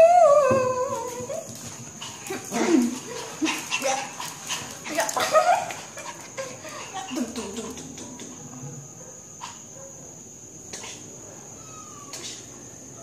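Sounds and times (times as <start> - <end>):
small dog whining and yipping: 11.6 - 12.3.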